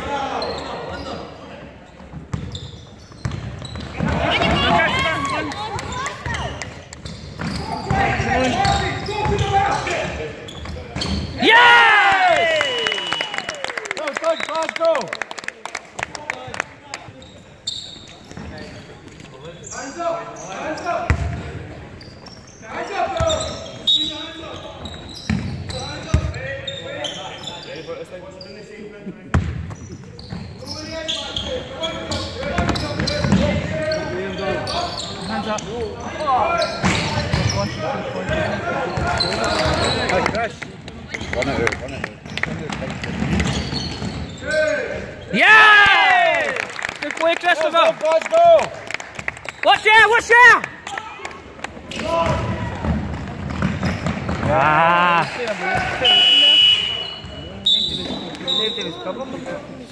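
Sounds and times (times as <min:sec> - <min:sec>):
ball bouncing on wooden court: 0:02.1 - 0:04.9, 0:05.8 - 0:09.6, 0:21.1 - 0:21.5, 0:29.3 - 0:30.5, 0:41.1 - 0:44.2, 0:51.9 - 0:54.6.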